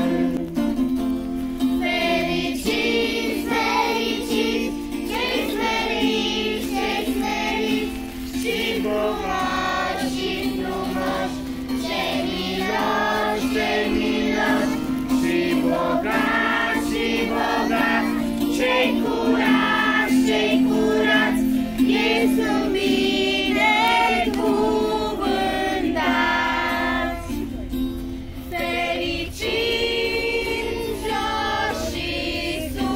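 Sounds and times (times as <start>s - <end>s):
group of voices singing: 0.0s - 0.9s, 1.7s - 32.9s
held accompaniment: 0.0s - 32.9s.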